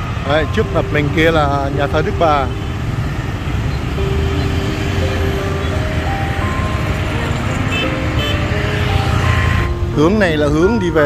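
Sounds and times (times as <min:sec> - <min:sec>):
motorbikes and cars passing: 0:00.0 - 0:11.0
simple tune of held notes: 0:00.0 - 0:11.0.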